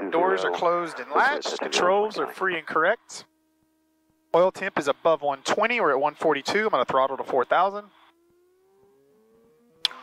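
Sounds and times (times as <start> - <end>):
faint aircraft engine running up: 4.4 - 10.0
sharp click: 9.8 - 10.0.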